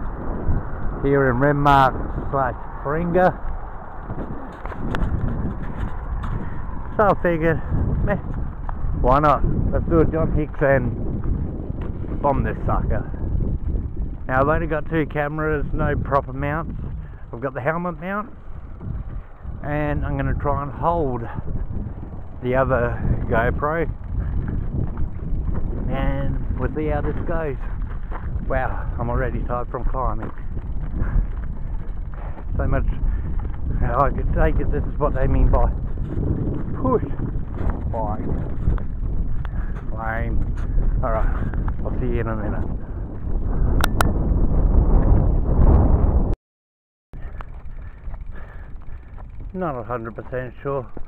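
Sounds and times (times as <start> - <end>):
wind buffeting microphone: 0.0 - 46.4, 47.2 - 51.0.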